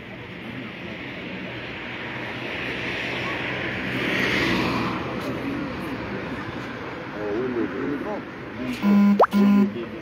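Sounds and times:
police siren horn tones: 8.8 - 9.8.

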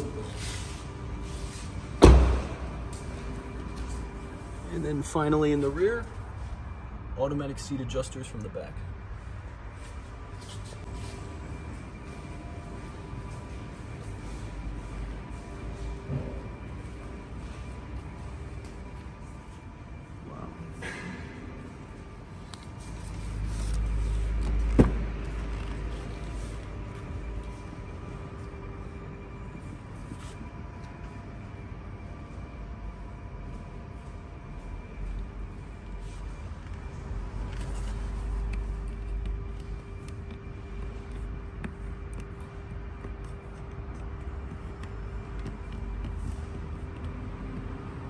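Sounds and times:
car door shutting thud: 2.0 - 2.6
sharp thump: 2.0 - 2.7.

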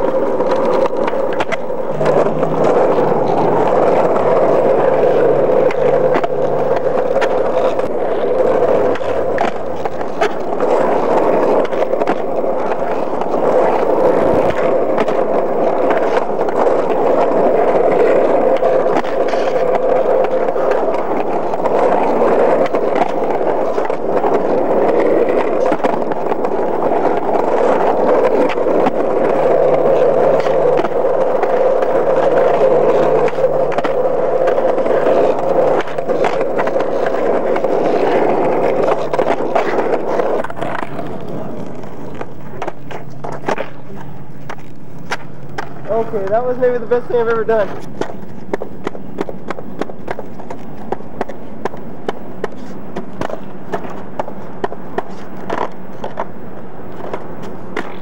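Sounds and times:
skateboard clicks and knocks: 0.0 - 58.0
skateboard wheels rolling on asphalt: 0.0 - 58.0.

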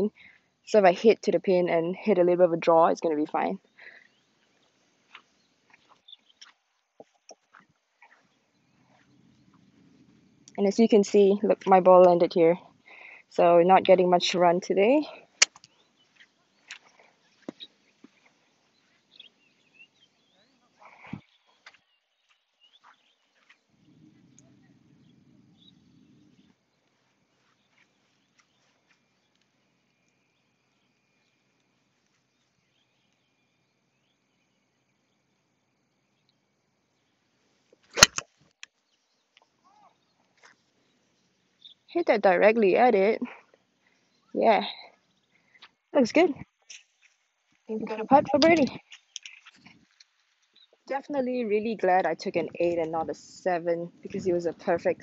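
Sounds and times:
golf club striking ball: 37.9 - 38.2.

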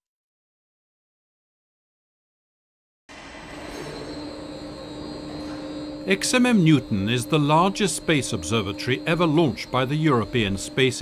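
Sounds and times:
hum and hiss: 3.1 - 11.0
low droning tone: 3.1 - 11.0.

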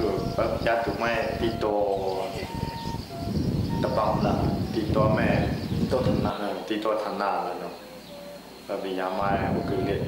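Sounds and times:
forest insects droning: 0.0 - 10.0.

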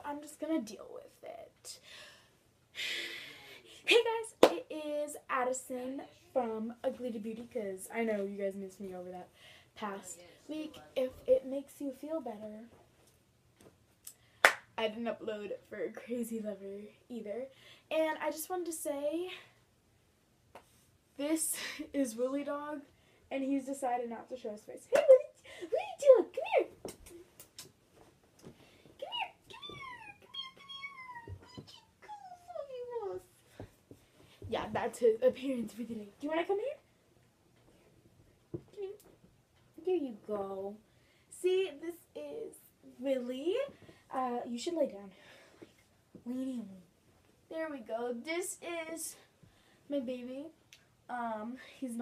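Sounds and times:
girl speaking: 0.0 - 1.5, 3.9 - 9.2, 9.8 - 12.7, 14.8 - 19.4, 21.2 - 26.8, 29.0 - 33.3, 34.4 - 36.8, 39.8 - 45.1, 46.2 - 46.9, 47.5 - 49.3, 49.9 - 52.0
dog whining: 29.5 - 32.7.

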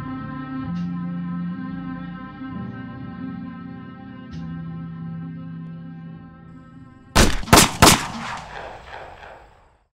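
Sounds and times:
echoing gunshots: 7.2 - 9.9.

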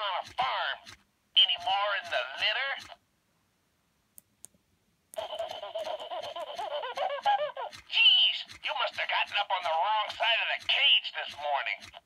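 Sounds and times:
tinny toy voice from speaker: 0.0 - 3.0, 5.2 - 12.0.

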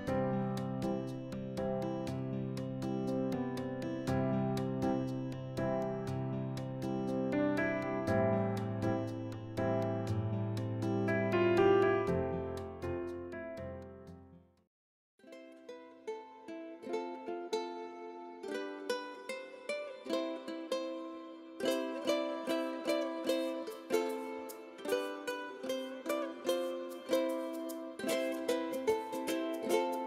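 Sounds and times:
plucked ukulele music: 0.0 - 14.0, 15.2 - 30.0.

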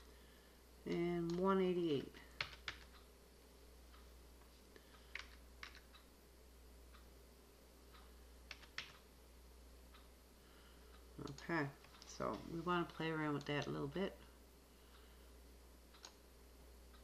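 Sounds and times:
low steady hum: 0.0 - 17.0
keyboard keystroke clicks: 5.1 - 5.9.

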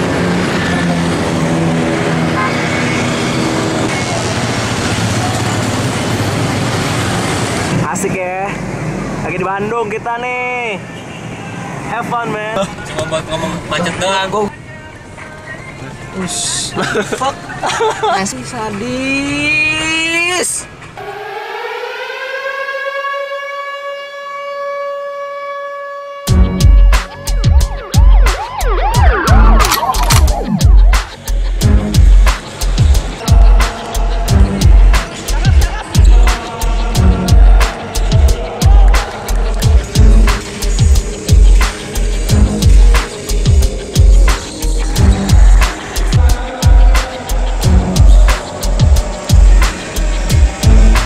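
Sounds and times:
road traffic hum: 0.0 - 51.0
siren wail: 21.0 - 31.1
low engine drone: 26.4 - 51.0.

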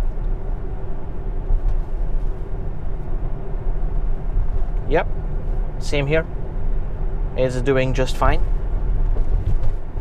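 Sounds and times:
road and tyre noise: 0.0 - 10.0.

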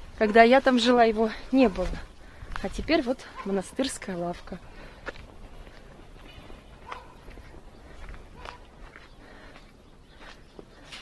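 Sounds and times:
footsteps on concrete: 0.0 - 11.0.

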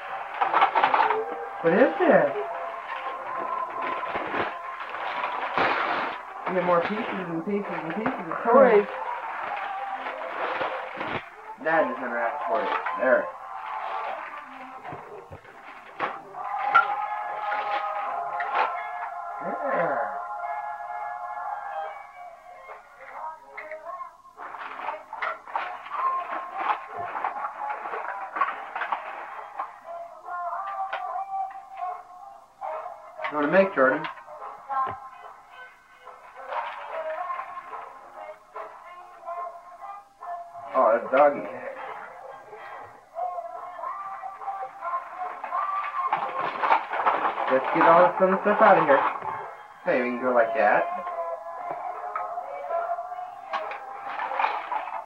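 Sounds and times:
music with voice from small loudspeaker: 0.0 - 55.0.

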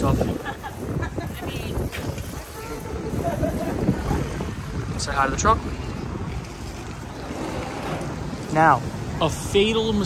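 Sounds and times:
city street noise: 0.0 - 10.0
wind buffeting microphone: 0.0 - 10.0.

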